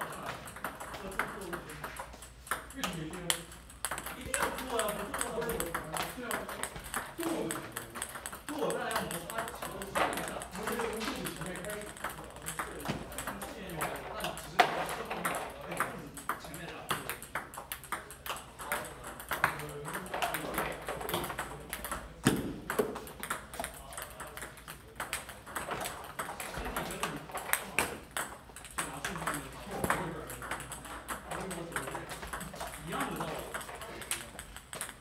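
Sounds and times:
table tennis balls clicking: 0.0s - 35.0s.

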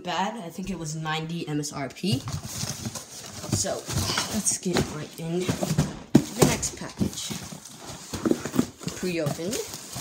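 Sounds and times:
cardboard box knocks and rustles: 2.6s - 10.0s.

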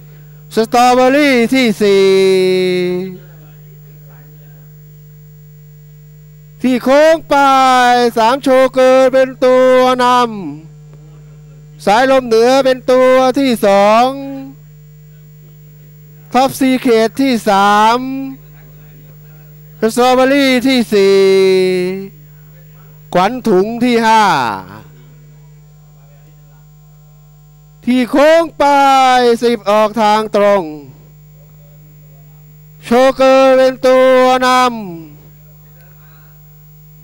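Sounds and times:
low electrical hum: 0.0s - 37.0s
race commentator speaking: 0.5s - 4.6s, 6.6s - 10.6s, 11.8s - 14.6s, 16.3s - 19.1s, 19.8s - 24.9s, 27.8s - 31.0s, 32.8s - 35.9s.

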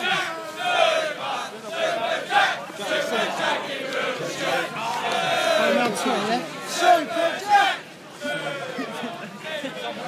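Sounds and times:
crowd shouting and chanting: 0.0s - 10.0s.

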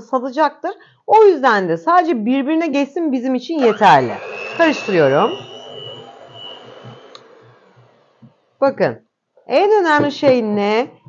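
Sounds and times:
electric hand mixer whining: 3.6s - 8.4s.

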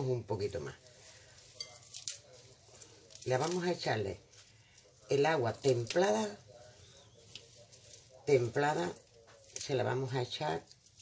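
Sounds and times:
leaves being torn by hand: 0.8s - 11.0s.

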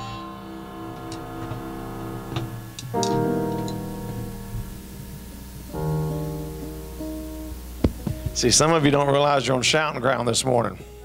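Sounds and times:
held keyboard chord: 0.0s - 10.2s.

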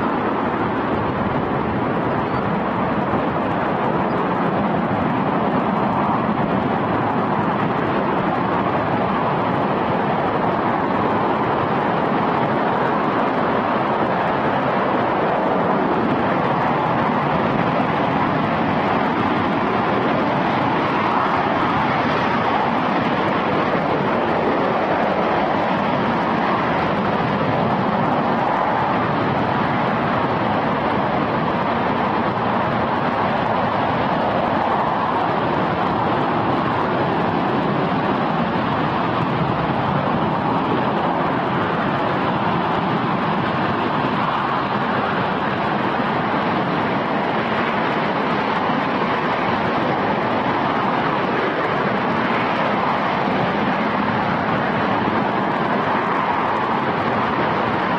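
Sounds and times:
rocket engine roaring: 0.0s - 57.9s.

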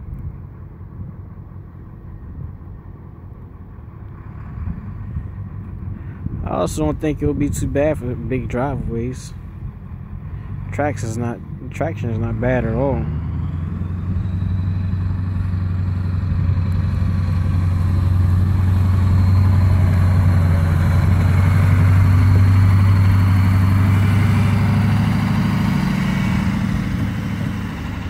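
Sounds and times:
diesel truck engine under load: 0.0s - 28.0s
snow plow pushing snow: 3.1s - 28.0s.

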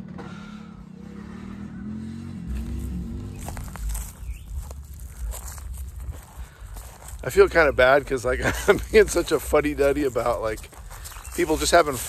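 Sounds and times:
vehicle engine humming: 0.0s - 12.0s
wind rumble on microphone: 2.6s - 7.2s.

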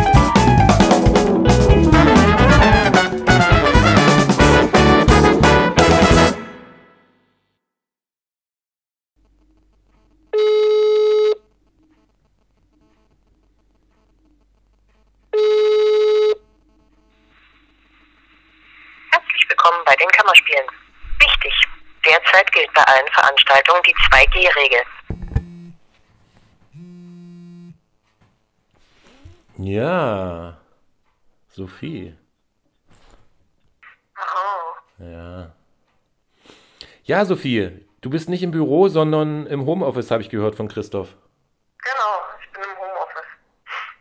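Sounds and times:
telephone ringback beep: 10.4s - 11.4s, 15.4s - 16.4s.

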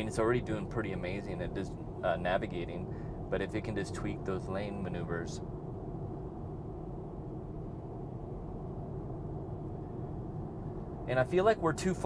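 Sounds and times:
road and tyre noise in car: 0.0s - 12.0s.

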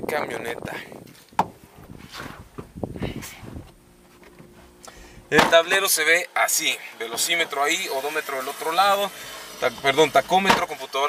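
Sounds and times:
soft bumps and rustling: 1.1s - 5.6s
sharp knock: 5.3s - 5.6s.

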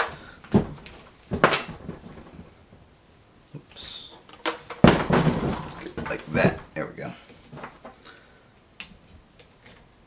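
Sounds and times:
clunk and rattle: 4.4s - 6.6s.

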